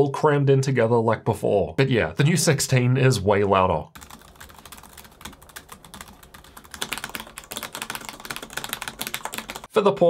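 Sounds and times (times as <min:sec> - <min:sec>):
fast laptop typing: 0:04.0 - 0:09.7
mechanical keyboard clatter: 0:04.0 - 0:09.7.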